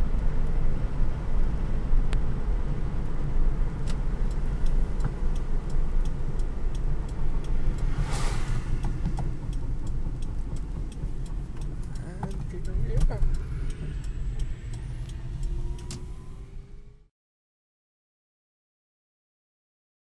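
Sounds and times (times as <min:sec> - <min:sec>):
car rushing past: 0:00.0 - 0:17.1
road and tyre noise in car cabin: 0:00.0 - 0:17.1.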